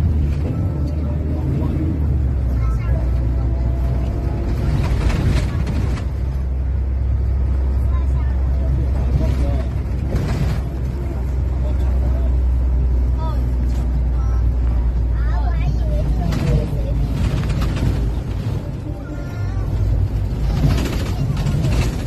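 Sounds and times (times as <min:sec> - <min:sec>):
engine and road rumble: 0:00.0 - 0:22.0
faint voices: 0:00.4 - 0:22.0.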